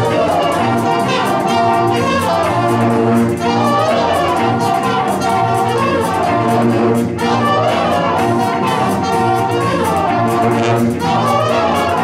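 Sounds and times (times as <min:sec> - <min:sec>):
jazz big band playing: 0:00.0 - 0:12.0.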